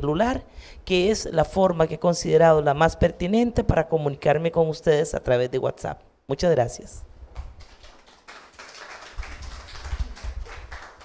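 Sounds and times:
audience applauding: 0:07.4 - 0:11.0.

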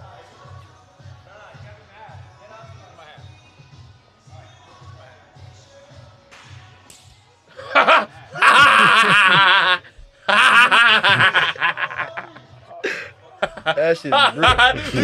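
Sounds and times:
faint background music with beat: 0:00.0 - 0:15.0
loud laughter: 0:07.5 - 0:15.0.

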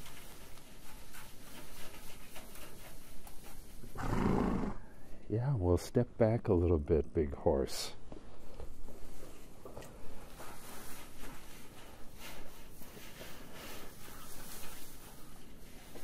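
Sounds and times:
dry hay rustling and crackling: 0:00.0 - 0:04.6, 0:08.8 - 0:16.0.

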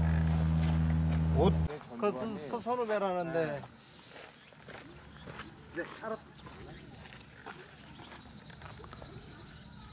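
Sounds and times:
footsteps on dirt path: 0:00.0 - 0:09.4
insects chirring: 0:01.4 - 0:09.9.

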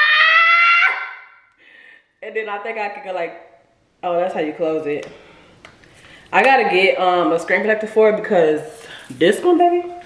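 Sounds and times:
woman squealing: 0:00.0 - 0:01.4.

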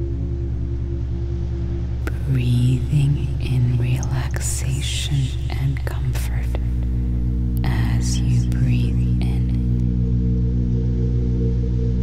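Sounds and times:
ambient music with low drone: 0:00.0 - 0:12.0
airy whisper-like high sounds: 0:02.1 - 0:09.8.

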